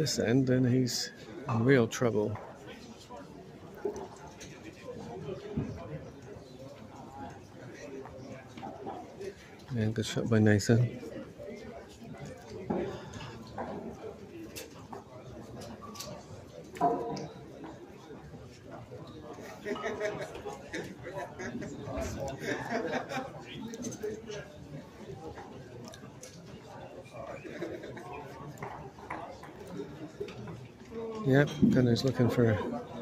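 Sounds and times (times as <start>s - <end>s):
murmur of voices: 0.0s - 33.0s.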